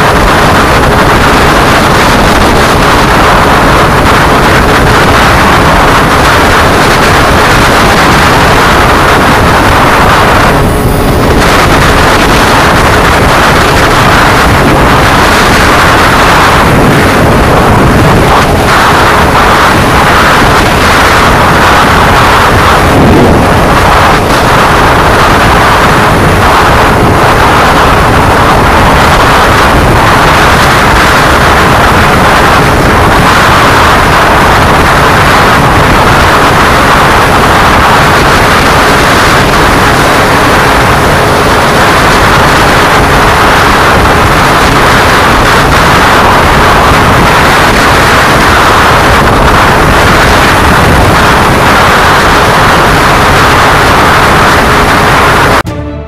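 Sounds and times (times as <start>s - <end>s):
wind buffeting microphone: 0.0s - 55.7s
motorcycle engine: 0.0s - 56.0s.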